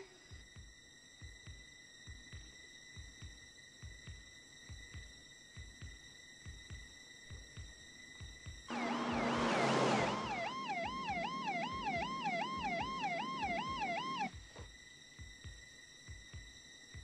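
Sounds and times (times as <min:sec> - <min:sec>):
car passing rush: 0:08.7 - 0:14.3
electronic music with low pulse: 0:08.7 - 0:14.3
police siren wailing: 0:08.7 - 0:14.3.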